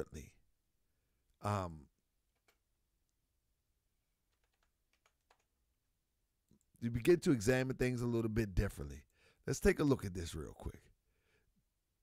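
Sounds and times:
computer keyboard typing: 4.3s - 5.6s.

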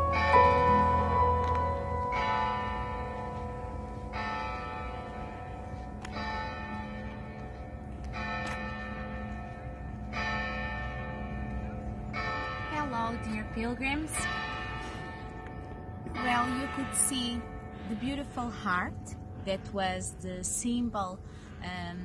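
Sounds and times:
church bell tolling: 0.0s - 21.8s.

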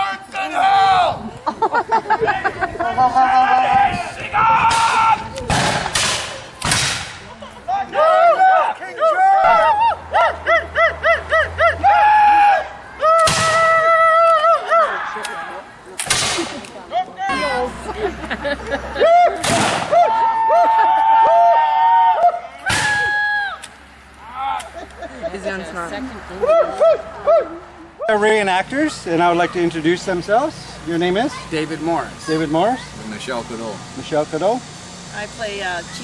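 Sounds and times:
voices yelling: 0.0s - 5.6s, 7.2s - 15.9s, 16.6s - 34.0s
musket shots echoing: 5.5s - 7.2s.

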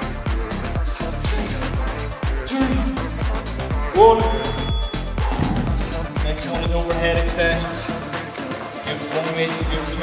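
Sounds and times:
upbeat dance music: 0.0s - 10.0s.

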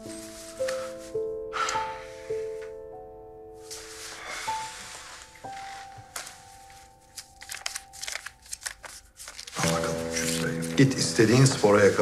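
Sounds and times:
soft background music: 0.0s - 12.0s
banknotes rustling: 3.6s - 12.0s.

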